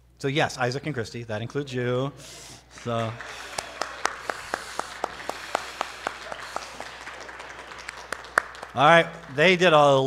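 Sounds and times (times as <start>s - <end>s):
light applause: 2.7s - 10.0s.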